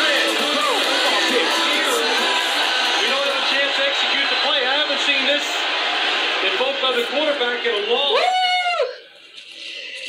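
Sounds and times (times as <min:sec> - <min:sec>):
background music: 0:00.0 - 0:04.5
voices talking on television: 0:00.0 - 0:08.4.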